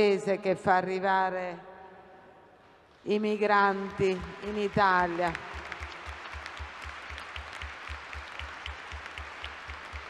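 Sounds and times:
audience applauding: 0:04.4 - 0:10.0.

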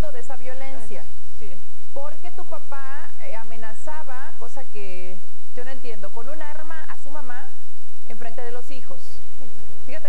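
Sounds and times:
background hiss: 0:00.0 - 0:10.0
woman speaking: 0:00.0 - 0:10.0.

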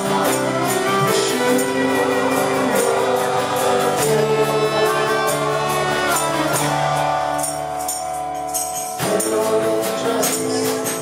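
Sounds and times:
acoustic guitar: 0:00.0 - 0:11.0
congregation singing: 0:00.0 - 0:11.0.

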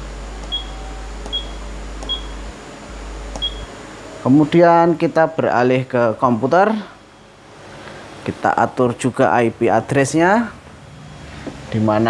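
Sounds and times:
low steady hum: 0:00.0 - 0:12.0
short high keypad beeps: 0:00.5 - 0:02.4, 0:03.4 - 0:03.7.

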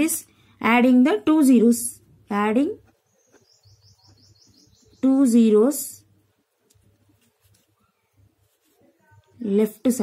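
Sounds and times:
bird chirping faintly: 0:02.8 - 0:06.1.

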